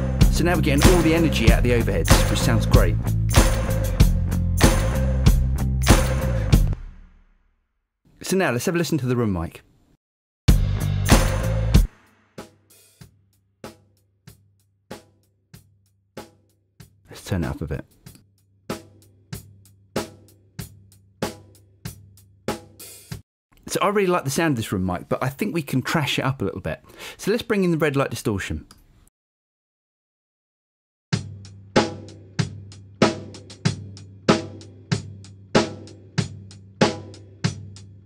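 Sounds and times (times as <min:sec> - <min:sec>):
drum hits ringing in a room: 0:00.0 - 0:07.4, 0:10.5 - 0:17.1, 0:18.7 - 0:23.2, 0:31.2 - 0:38.0.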